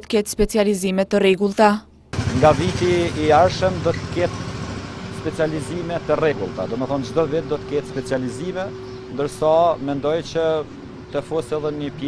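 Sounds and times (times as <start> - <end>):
outdoor street noise hum: 1.8 - 12.0
man speaking into microphones: 2.3 - 4.3, 5.2 - 12.0.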